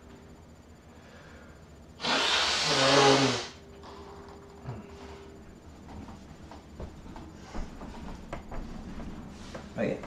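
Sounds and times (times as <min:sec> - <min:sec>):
person blowing nose: 0:02.0 - 0:03.6.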